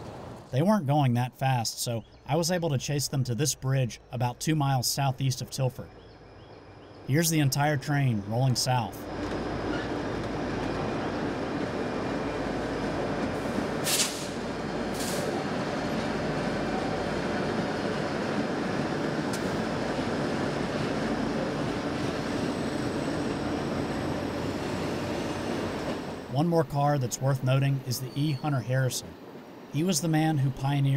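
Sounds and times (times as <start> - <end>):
train rolling over bridge: 0.0 - 0.5, 6.6 - 30.9
low engine hum: 5.2 - 26.3
brief sharp noises: 13.8 - 14.4.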